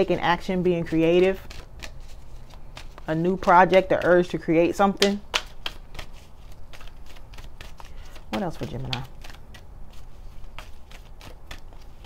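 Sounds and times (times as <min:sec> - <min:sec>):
cards being shuffled: 0:00.9 - 0:12.0.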